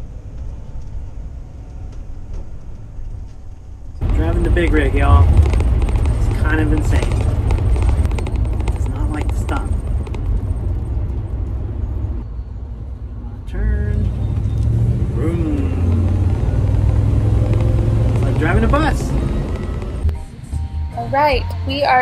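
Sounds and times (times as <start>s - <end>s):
engine and road rumble in cab: 0.0s - 22.0s.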